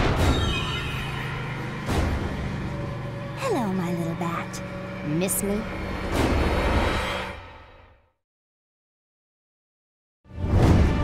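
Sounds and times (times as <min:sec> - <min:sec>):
sharp sound-effect hits: 0:00.0 - 0:02.5
dramatic cartoon music: 0:00.0 - 0:08.1, 0:10.3 - 0:11.0.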